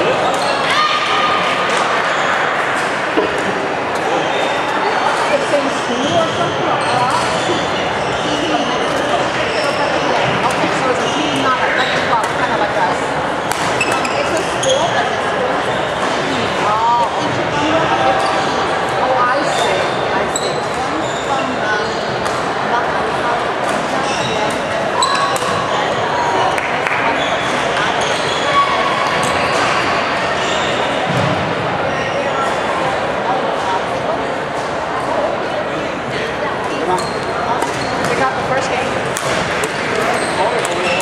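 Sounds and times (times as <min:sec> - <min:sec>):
hubbub of voices echoing: 0:00.0 - 0:41.0
shoes squeaking on wooden court: 0:03.2 - 0:12.7, 0:13.4 - 0:16.3, 0:19.4 - 0:22.4, 0:23.7 - 0:26.0, 0:27.0 - 0:32.6, 0:36.6 - 0:41.0
rackets hitting shuttlecock: 0:13.4 - 0:14.1, 0:37.6 - 0:38.2, 0:39.1 - 0:41.0.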